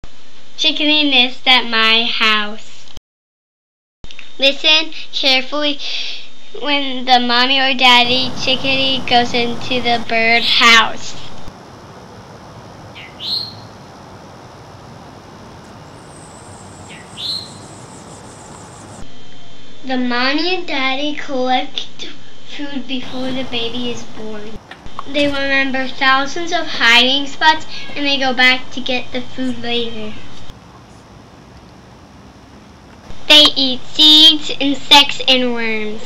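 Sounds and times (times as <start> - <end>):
child narrating: 0.6 - 2.7, 4.4 - 11.5, 19.9 - 30.3, 33.2 - 36.0
background hiss: 7.4 - 19.8, 22.0 - 36.0
nestlings calling: 8.1 - 19.0
chickadee chirps: 12.0 - 19.0.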